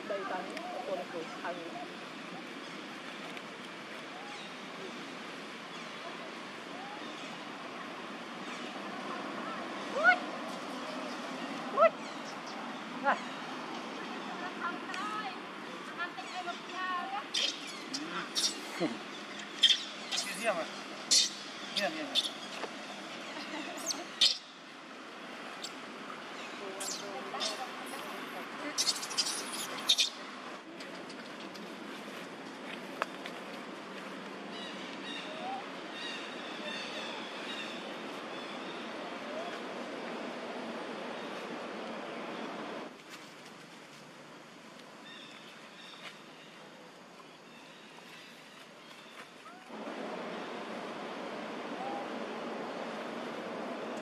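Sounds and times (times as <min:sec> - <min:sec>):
baby macaques squeaking: 0:17.3 - 0:18.8, 0:19.4 - 0:20.4, 0:21.1 - 0:22.5, 0:23.8 - 0:24.5, 0:28.8 - 0:30.2
steady hiss: 0:49.7 - 0:54.0.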